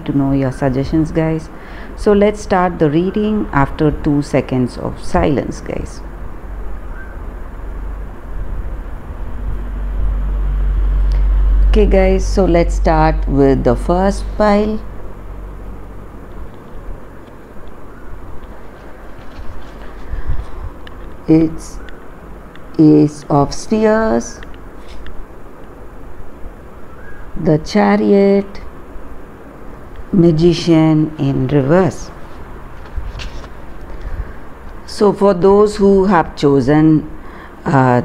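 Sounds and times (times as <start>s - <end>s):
low background rumble: 0.0s - 38.0s.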